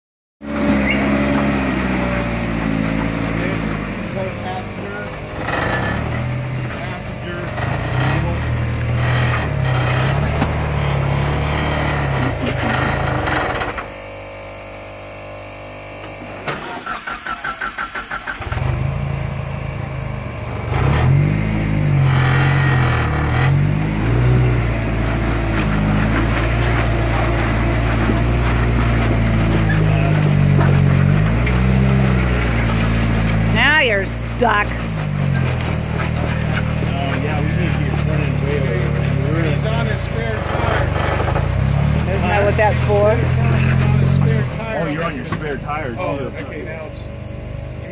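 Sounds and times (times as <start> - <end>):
engine revving: 0.4 - 13.9, 16.6 - 46.9
engine starter cranking: 16.5 - 19.0.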